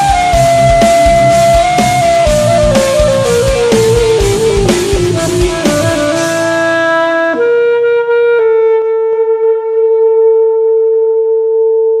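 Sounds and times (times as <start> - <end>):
saxophone holding long note: 0.0 - 12.0.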